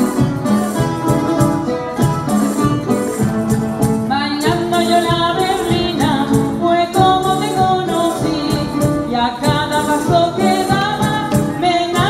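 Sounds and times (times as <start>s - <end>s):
strummed string instruments: 0.0s - 12.0s.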